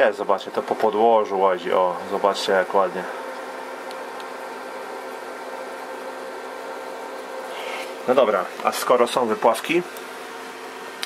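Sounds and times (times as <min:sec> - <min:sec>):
steady low hum: 0:00.0 - 0:11.0
even hiss: 0:07.5 - 0:09.9.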